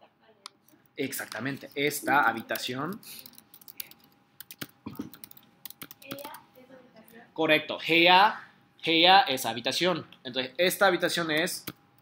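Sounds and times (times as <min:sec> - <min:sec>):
computer keyboard typing: 0:01.3 - 0:06.4.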